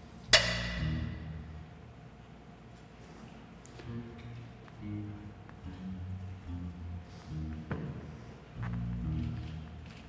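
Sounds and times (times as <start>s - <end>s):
soft background music: 3.6s - 10.0s.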